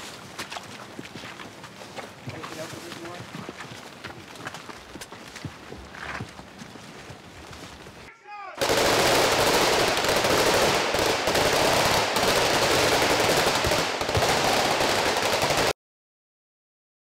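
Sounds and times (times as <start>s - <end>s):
automatic gunfire: 8.6s - 15.7s.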